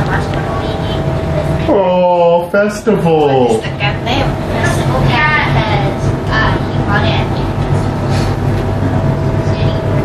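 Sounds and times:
voice: 0.0 - 7.6, 9.4 - 10.0.

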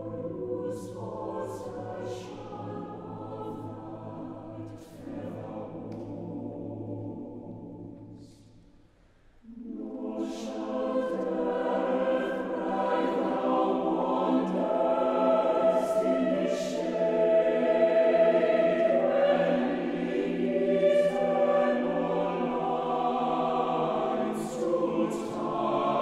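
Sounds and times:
choir singing held chords: 0.0 - 8.4, 9.4 - 26.0.

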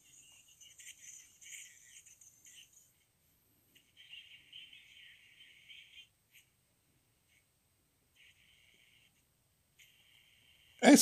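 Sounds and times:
faint tinny radio broadcast: 0.0 - 11.0.

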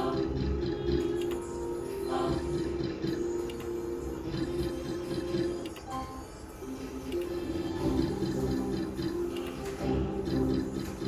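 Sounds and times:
slot machine music: 0.0 - 11.0.

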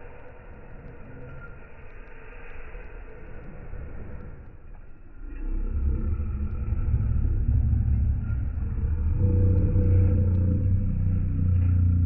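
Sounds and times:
dog growling deeply: 5.2 - 12.0.

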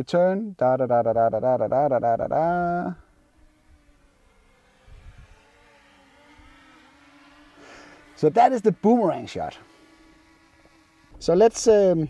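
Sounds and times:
drone propellers buzzing: 1.6 - 12.0
wind rumble on microphone: 4.9 - 5.4.

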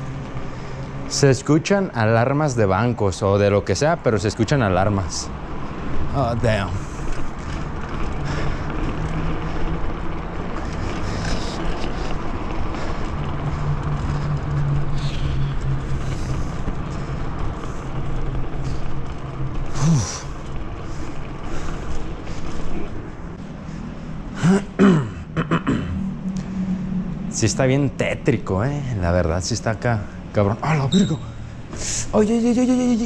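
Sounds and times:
bike tyres rolling on pavement: 0.0 - 33.0
bike clicks and rattles: 2.6 - 25.0
falling squeal: 30.7 - 31.4.

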